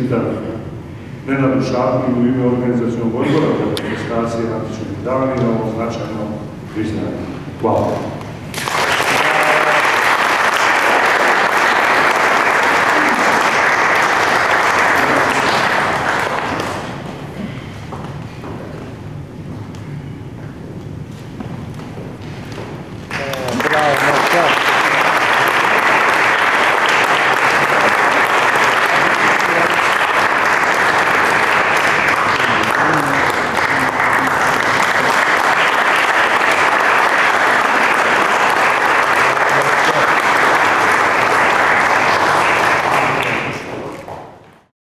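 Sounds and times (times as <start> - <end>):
audience applauding: 8.5 - 17.1, 23.0 - 44.7.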